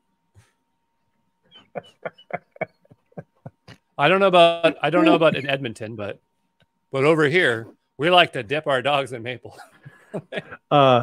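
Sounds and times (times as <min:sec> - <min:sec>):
person laughing in bursts: 0:01.6 - 0:03.9, 0:04.7 - 0:05.5, 0:09.5 - 0:10.8.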